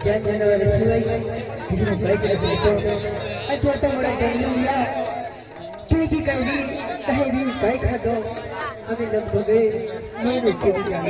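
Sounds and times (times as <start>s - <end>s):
performers speaking dialogue: 0.0s - 11.0s.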